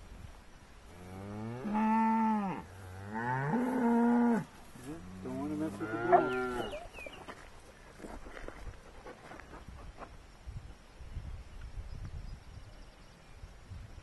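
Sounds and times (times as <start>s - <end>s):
cattle mooing: 1.1s - 6.8s.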